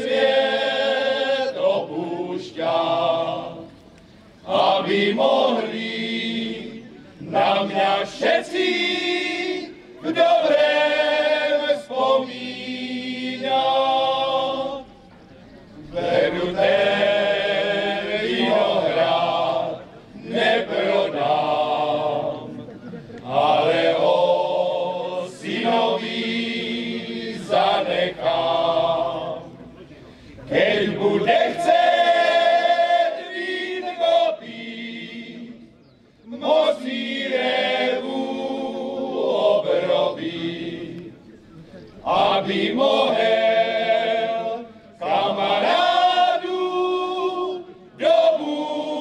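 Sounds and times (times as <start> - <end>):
men's choir singing unaccompanied: 0.0 - 49.0.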